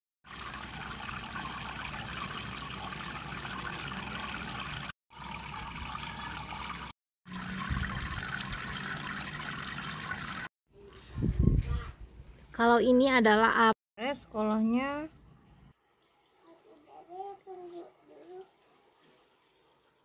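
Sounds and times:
water trickling into pond: 0.3s - 11.0s, 14.8s - 20.0s.

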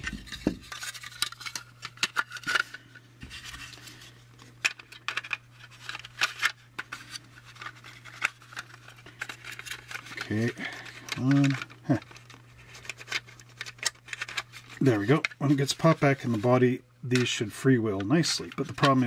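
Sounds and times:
plastic parts clicking and scraping: 0.0s - 19.0s
steady low hum: 0.0s - 19.0s.

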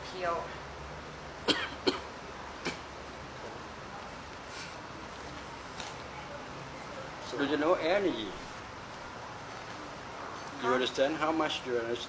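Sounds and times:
person coughing: 1.5s - 2.1s.

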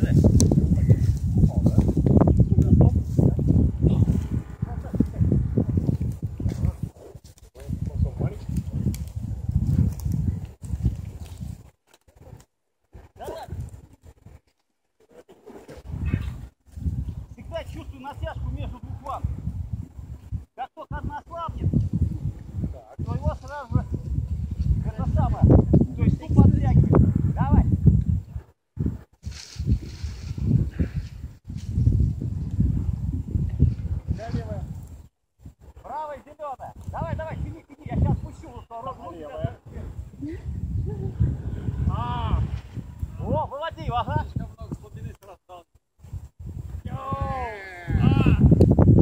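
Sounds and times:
gusty wind on microphone: 0.0s - 14.5s, 15.4s - 45.2s, 46.0s - 49.0s.

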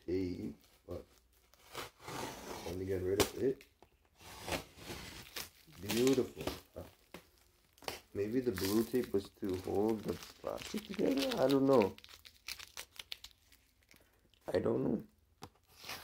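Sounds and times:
plastic wrapping crinkling and tearing: 2.7s - 14.6s.

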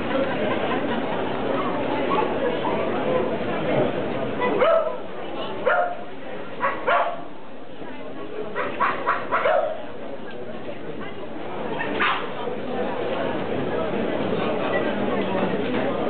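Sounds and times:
background chatter: 0.0s - 16.0s
dog barking: 4.5s - 5.0s, 5.7s - 6.0s, 6.6s - 7.3s, 8.6s - 9.8s, 12.0s - 12.3s.

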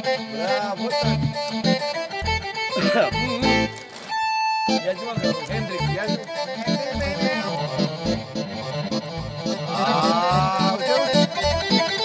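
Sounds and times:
accordion playing fast melody: 0.0s - 12.0s.

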